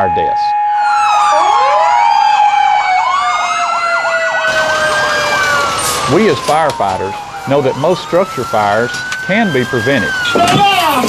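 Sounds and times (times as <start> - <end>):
fire truck sirens wailing and yelping: 0.0 - 11.0.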